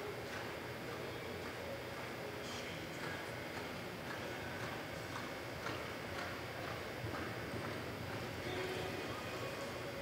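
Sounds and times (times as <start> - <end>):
horse hoofbeats on soft dirt: 3.0 - 8.6.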